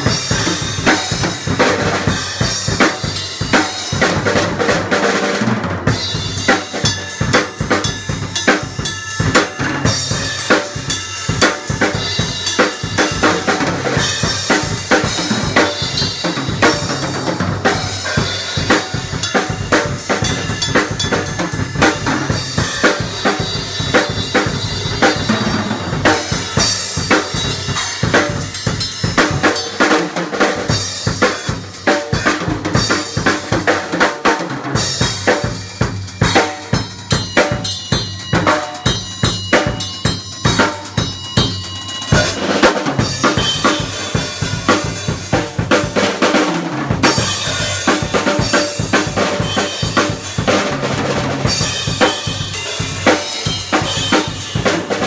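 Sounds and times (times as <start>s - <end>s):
acoustic drum kit playing: 0.0s - 55.0s.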